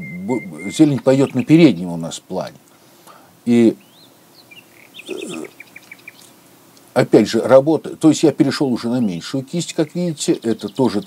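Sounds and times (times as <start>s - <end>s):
songbirds chirping: 0.0s - 11.0s.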